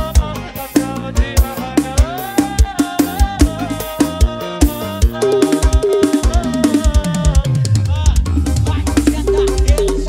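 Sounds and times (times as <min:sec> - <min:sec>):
acoustic drum kit playing: 0:00.0 - 0:10.0
backing track of pitched instruments: 0:00.0 - 0:10.0.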